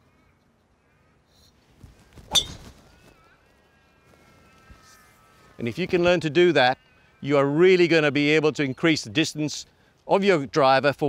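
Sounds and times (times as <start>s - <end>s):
golf ball impact crack: 2.2s - 2.9s
golf club swish: 2.3s - 2.6s.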